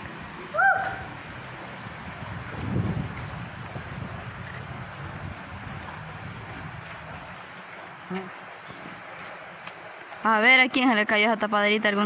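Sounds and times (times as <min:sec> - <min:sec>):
wind on microphone: 0:01.8 - 0:07.6.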